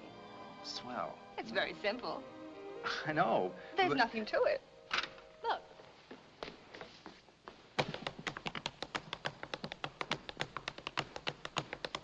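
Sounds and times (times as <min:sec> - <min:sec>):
tap shoes tapping on dance floor: 0:07.5 - 0:12.0.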